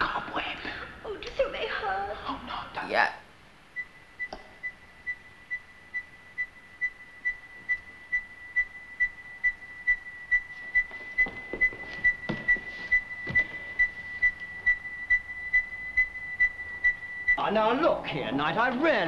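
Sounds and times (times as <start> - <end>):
high electronic beeping: 3.8 - 18.8.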